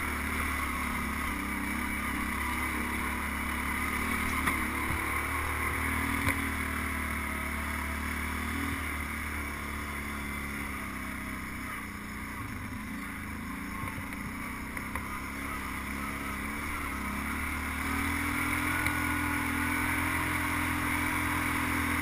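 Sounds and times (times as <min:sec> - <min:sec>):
atv engine running: 0:00.0 - 0:22.0.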